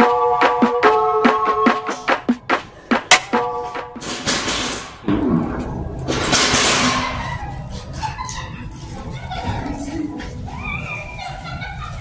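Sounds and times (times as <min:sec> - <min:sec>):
music beat: 0:00.0 - 0:05.4.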